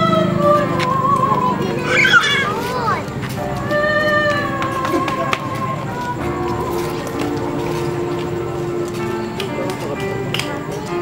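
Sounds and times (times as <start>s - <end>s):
high voice singing held note: 0.0s - 2.6s.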